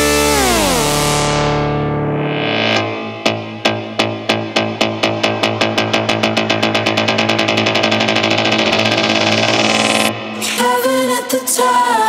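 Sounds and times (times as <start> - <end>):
held bass note: 0.0 - 3.4
techno drum roll: 6.6 - 10.1.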